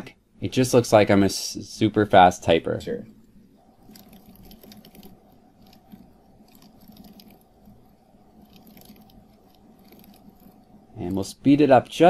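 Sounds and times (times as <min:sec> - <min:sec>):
low steady hiss: 0:00.0 - 0:12.0
keyboard typing clicks: 0:03.8 - 0:10.6.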